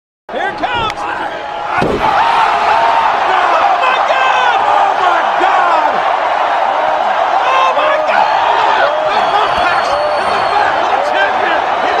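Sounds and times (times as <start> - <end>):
man's voice: 0.3 - 1.9
crowd shouting and cheering: 0.3 - 12.0.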